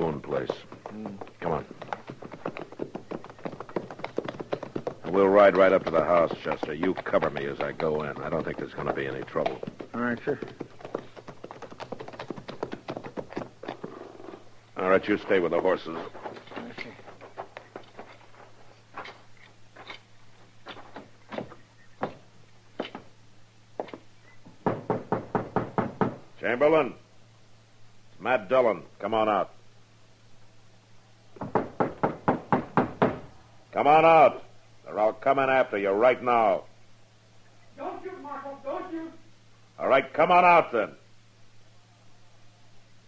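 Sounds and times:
horse hoofbeats clip-clopping: 0:00.0 - 0:23.2
footsteps walking slowly: 0:00.0 - 0:24.6
faint steady hum: 0:00.0 - 0:43.0
knocking on a door: 0:01.8 - 0:13.4, 0:24.5 - 0:26.2, 0:31.4 - 0:33.3.

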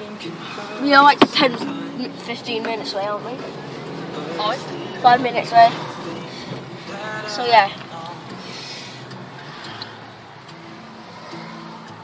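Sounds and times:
car engine hum: 0:00.0 - 0:12.0
road noise: 0:00.0 - 0:12.0.

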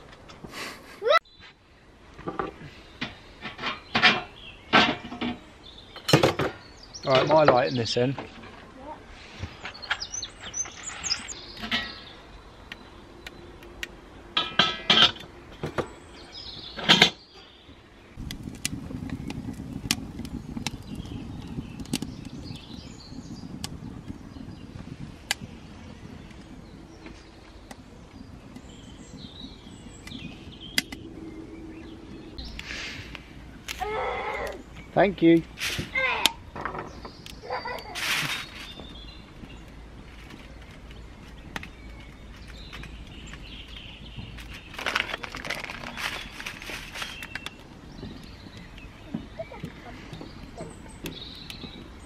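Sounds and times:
faint birdsong: 0:00.6 - 0:52.0
wood scraping and knocking: 0:02.2 - 0:08.8, 0:34.8 - 0:52.0
wood fire crackling and popping: 0:18.2 - 0:52.0.

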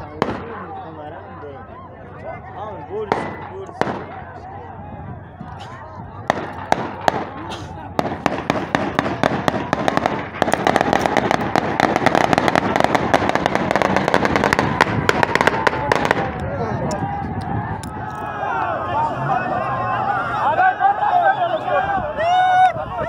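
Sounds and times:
gunfire: 0:03.1 - 0:04.3, 0:06.2 - 0:16.4
men shouting: 0:13.8 - 0:23.0.

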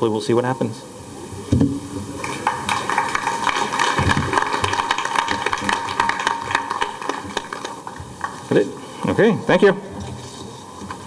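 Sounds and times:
audience applauding: 0:02.1 - 0:09.0.

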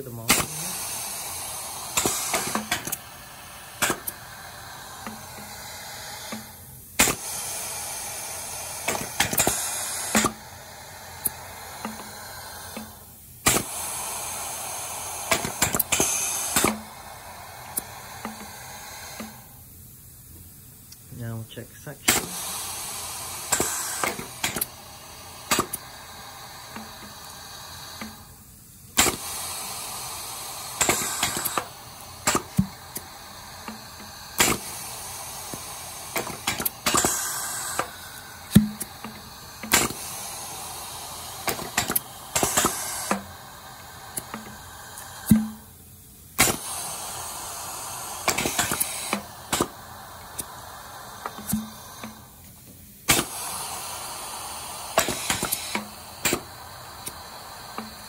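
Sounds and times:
hissing air exhaust: 0:00.0 - 0:58.0
sharp clacks of pistons and valves: 0:00.2 - 0:03.1, 0:03.8 - 0:04.3, 0:04.9 - 0:10.5, 0:11.2 - 0:14.6, 0:15.3 - 0:17.0, 0:17.7 - 0:19.5, 0:22.0 - 0:28.3, 0:28.9 - 0:58.0.

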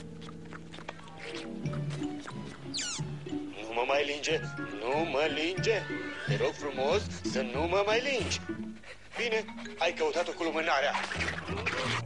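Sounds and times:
slobbery dog licking: 0:00.0 - 0:02.6.

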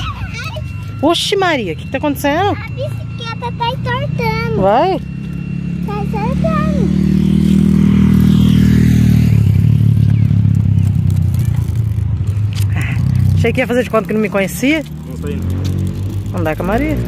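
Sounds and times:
vehicle engine passing by: 0:00.7 - 0:17.0.

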